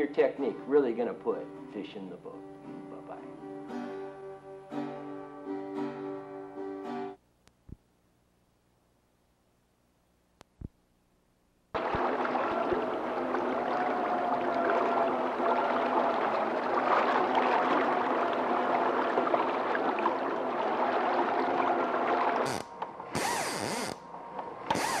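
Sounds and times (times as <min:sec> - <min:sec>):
short bursts of sound: 0:22.4 - 0:24.0, 0:24.7 - 0:25.0
fishing reel ratchet buzzing: 0:23.2 - 0:24.0, 0:24.7 - 0:25.0.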